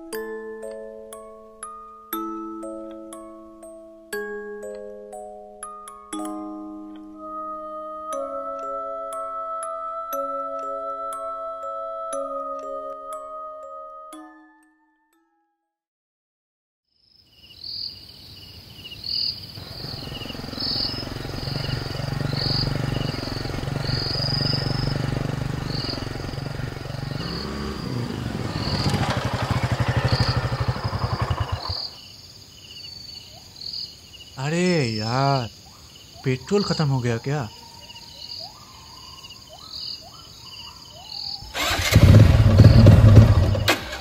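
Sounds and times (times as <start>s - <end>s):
crickets chirping: 17.0s - 44.0s
motorcycle engine running rough: 19.6s - 32.0s, 41.6s - 44.0s
starter motor cranking: 41.6s - 44.0s.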